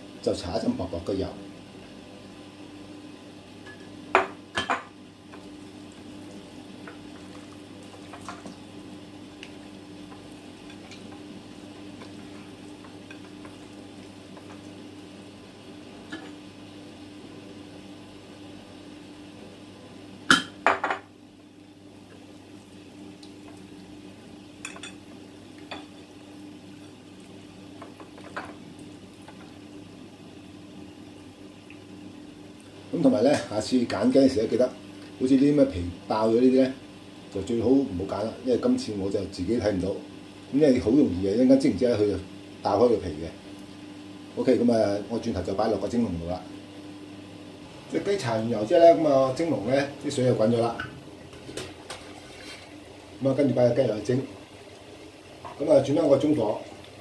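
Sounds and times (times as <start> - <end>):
steady low hum: 0.0 - 57.0.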